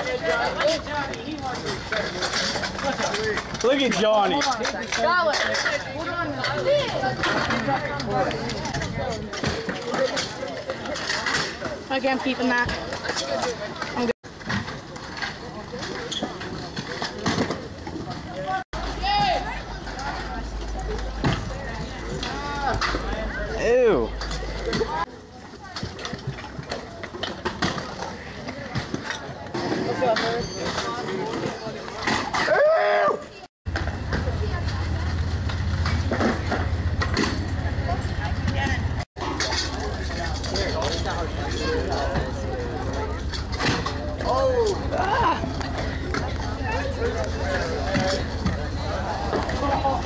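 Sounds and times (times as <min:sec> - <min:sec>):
onlookers chatting: 0:00.0 - 0:50.0
scooters rolling on concrete: 0:00.0 - 0:50.0.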